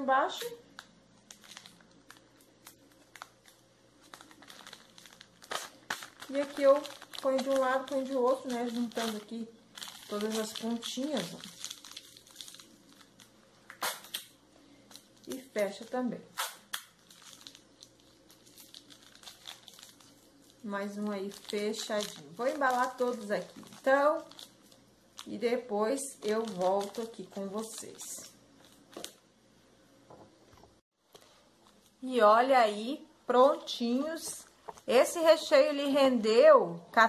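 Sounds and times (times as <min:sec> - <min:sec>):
plastic wrapper crinkling: 0:00.3 - 0:29.3.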